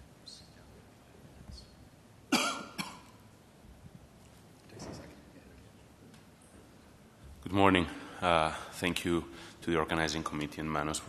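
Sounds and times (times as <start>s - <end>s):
person coughing: 2.3s - 3.2s.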